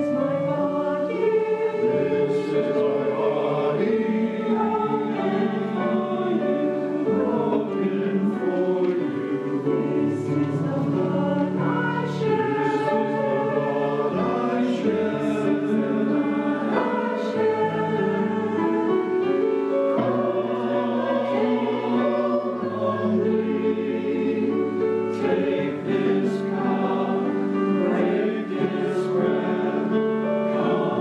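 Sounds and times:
church choir singing: 0:00.0 - 0:31.0
piano accompaniment: 0:00.0 - 0:31.0.

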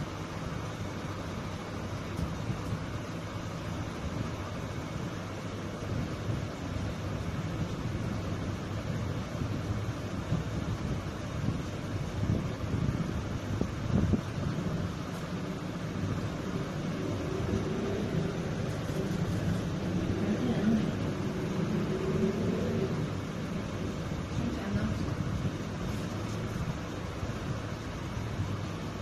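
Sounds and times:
low rumble and hiss: 0:00.0 - 0:29.0.

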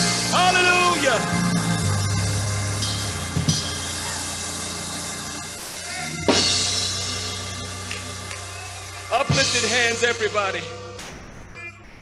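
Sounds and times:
church worship music: 0:00.0 - 0:11.0
drum and cymbal crash: 0:05.6 - 0:07.6.

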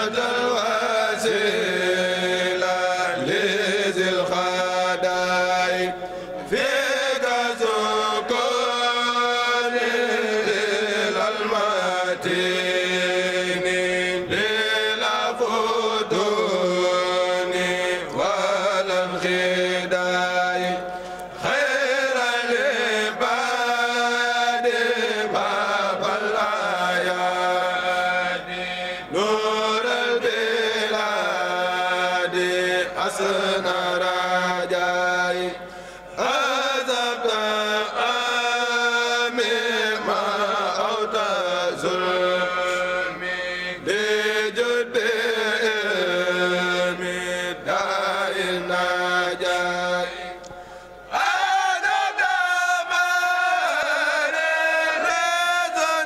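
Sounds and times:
men chanting in unison: 0:00.0 - 0:56.0.

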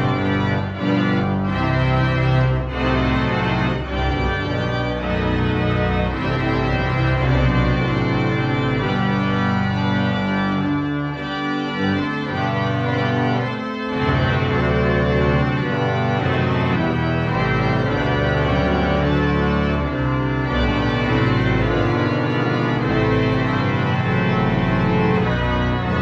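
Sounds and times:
pipe organ chords: 0:00.0 - 0:26.0.

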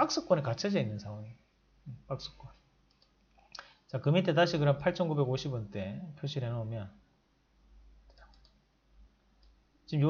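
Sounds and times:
computer mouse clicks: 0:02.8 - 0:03.7, 0:08.1 - 0:08.6, 0:09.4 - 0:09.6.

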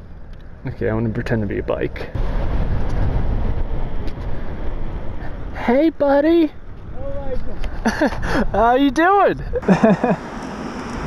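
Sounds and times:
road noise from moving bike: 0:00.0 - 0:11.0
wind rumble on microphone: 0:01.5 - 0:05.6, 0:06.6 - 0:09.6.

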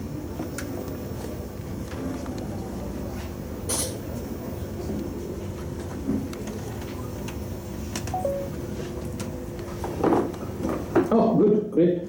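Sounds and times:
two-step falling electronic beep: 0:08.2 - 0:08.6.

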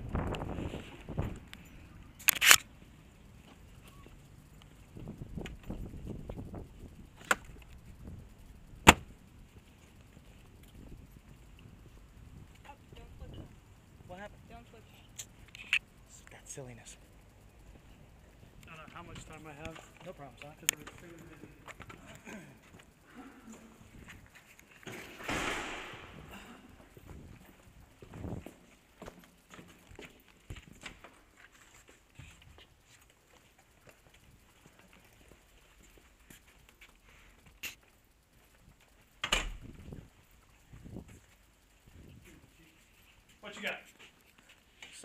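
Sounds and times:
camera handling clicks: 0:02.2 - 0:02.7
footsteps: 0:23.5 - 0:38.0, 0:42.2 - 0:45.0
sharp knocks: 0:25.2 - 0:26.3.

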